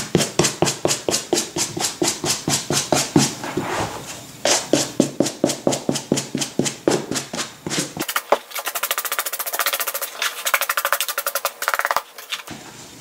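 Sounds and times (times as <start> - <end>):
brush scrubbing suede: 0.0 - 12.5.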